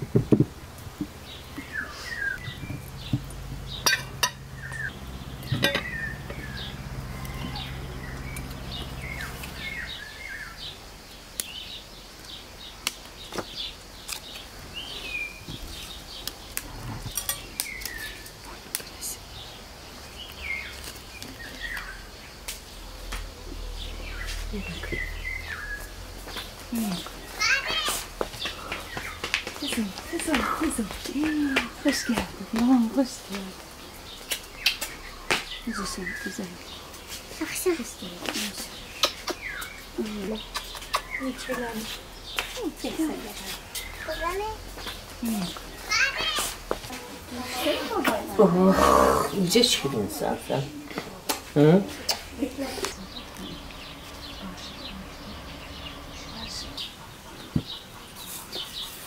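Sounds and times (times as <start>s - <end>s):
women talking: 24.5s - 25.1s, 26.7s - 27.2s, 29.6s - 33.7s, 35.6s - 36.7s, 37.3s - 38.8s, 39.9s - 44.6s, 45.2s - 45.7s, 46.8s - 51.3s, 52.1s - 57.0s.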